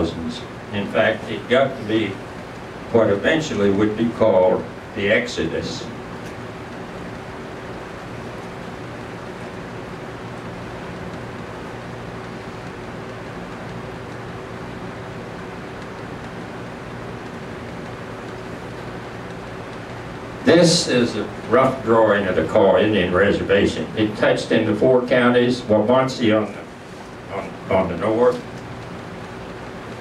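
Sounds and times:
room hiss and hum: 0:00.0 - 0:30.0.

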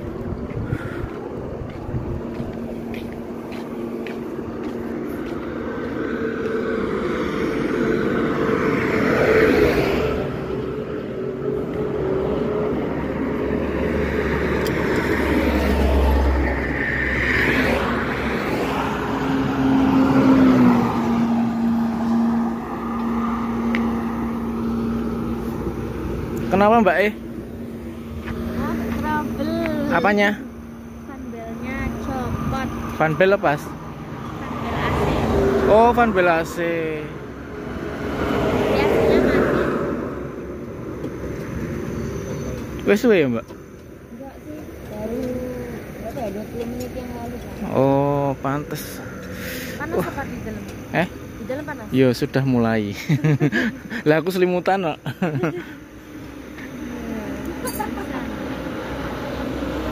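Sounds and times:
highway traffic engine hum: 0:00.0 - 0:59.9
indistinct voices: 0:28.2 - 0:37.2, 0:42.8 - 0:52.9.

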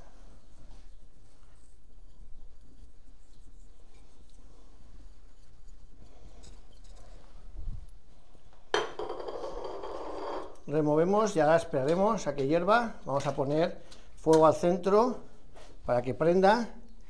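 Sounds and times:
faint handling sounds: 0:00.0 - 0:08.7, 0:10.6 - 0:17.0.

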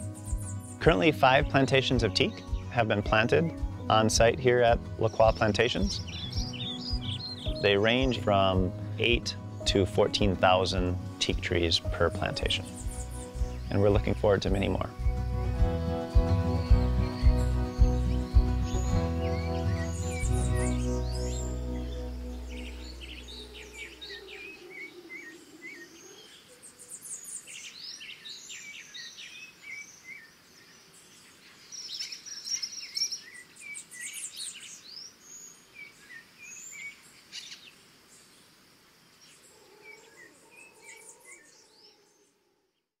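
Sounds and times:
closing music: 0:00.0 - 0:24.2
birds chirping and calling: 0:00.0 - 0:37.8, 0:39.2 - 0:42.4.

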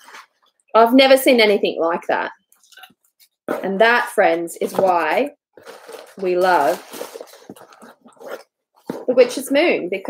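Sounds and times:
tissue paper rustling: 0:04.6 - 0:09.1.

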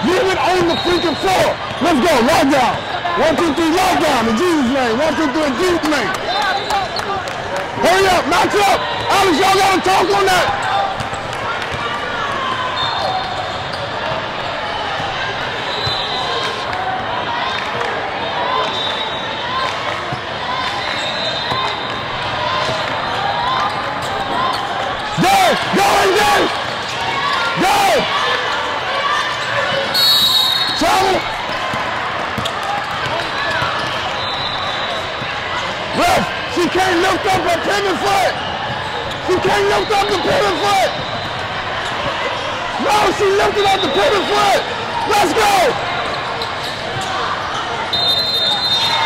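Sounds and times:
voices echoing in a hall: 0:00.0 - 0:49.0.

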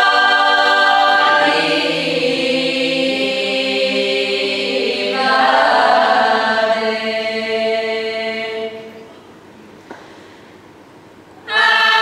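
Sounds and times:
women's choir singing a cappella: 0:00.0 - 0:09.0, 0:11.4 - 0:12.0.

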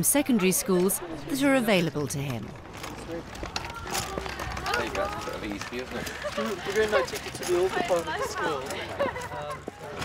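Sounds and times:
footsteps on paving slabs: 0:02.2 - 0:10.0.

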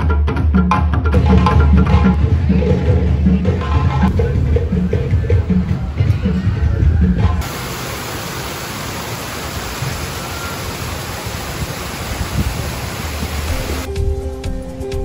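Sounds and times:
fountain water pouring: 0:07.4 - 0:13.9
background music: 0:13.6 - 0:15.0.

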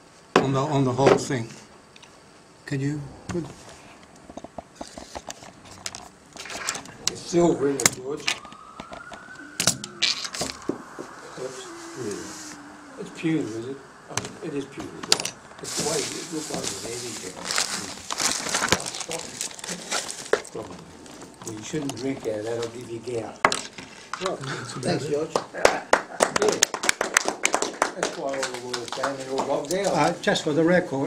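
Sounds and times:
rustling and handling noise: 0:15.0 - 0:24.3.

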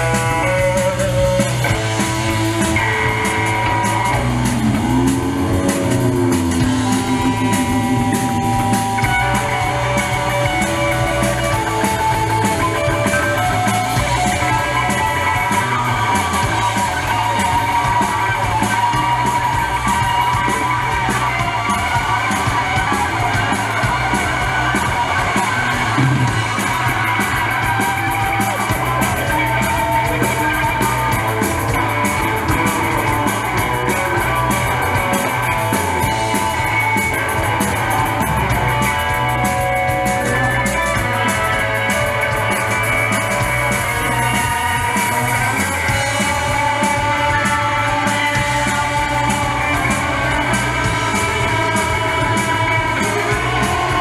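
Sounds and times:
drum kit with cymbals: 0:00.0 - 0:54.0
electric bass: 0:00.0 - 0:54.0
electric guitars sustained notes: 0:00.0 - 0:54.0
live rock band playing: 0:00.0 - 0:54.0.

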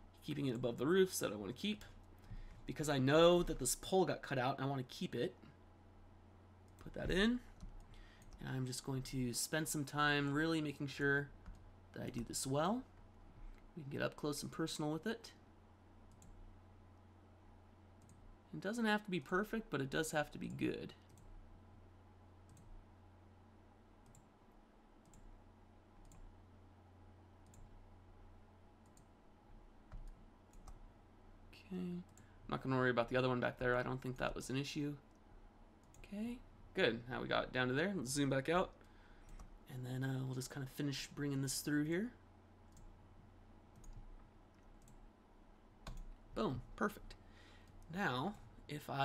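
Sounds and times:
low steady hum: 0:00.0 - 0:49.0
computer mouse clicks: 0:22.4 - 0:22.8, 0:24.0 - 0:24.3, 0:25.0 - 0:25.3, 0:26.0 - 0:26.3, 0:27.4 - 0:27.7, 0:42.7 - 0:43.0, 0:43.7 - 0:45.0.

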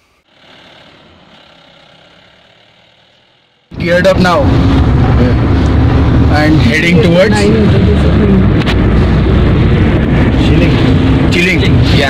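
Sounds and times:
vehicle engine running: 0:00.3 - 0:12.0.

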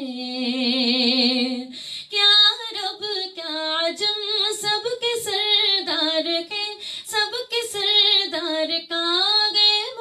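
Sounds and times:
woman singing unaccompanied: 0:00.0 - 0:10.0
singer breathing: 0:01.7 - 0:02.2, 0:06.8 - 0:07.1.

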